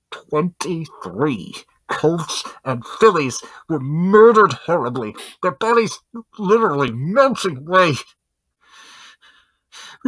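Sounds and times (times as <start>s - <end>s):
person speaking: 0.0s - 8.2s
person inhaling: 8.6s - 10.0s.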